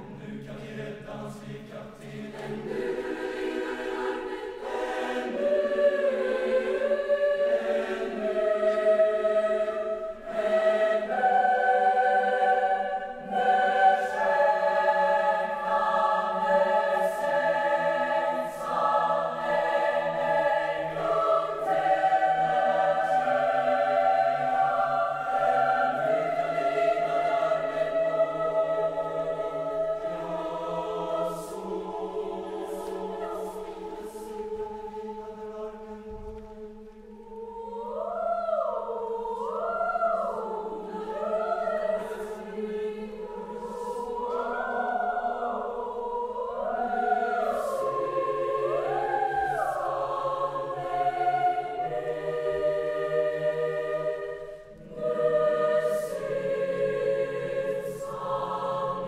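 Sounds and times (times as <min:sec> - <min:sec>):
choir singing sustained chords: 0:00.0 - 0:59.0.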